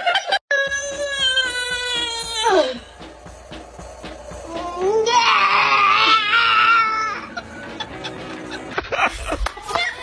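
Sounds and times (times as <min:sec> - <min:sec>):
baby crying: 0:04.8 - 0:07.4.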